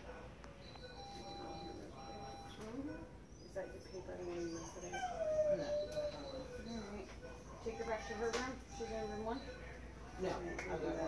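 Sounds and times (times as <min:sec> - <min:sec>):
dog whining: 0:04.1 - 0:07.0.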